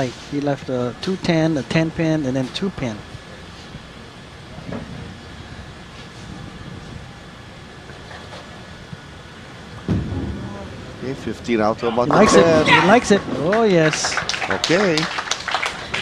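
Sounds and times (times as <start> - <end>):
bowling alley hubbub: 0.0 - 16.0.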